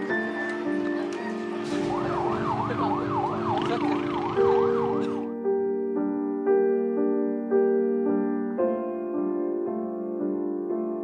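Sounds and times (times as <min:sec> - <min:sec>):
ambulance siren yelping: 0:01.7 - 0:05.3.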